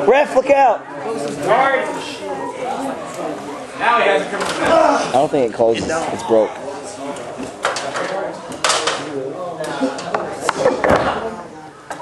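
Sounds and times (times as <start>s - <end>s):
murmuring voices: 0.0s - 12.0s.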